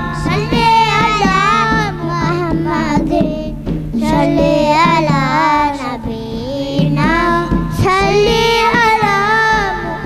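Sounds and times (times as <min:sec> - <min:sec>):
person singing devotional song: 0:00.0 - 0:10.0.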